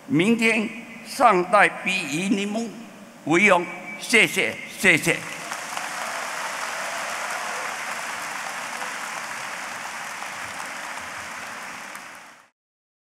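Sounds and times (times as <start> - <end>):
large audience applauding: 5.3 - 12.5.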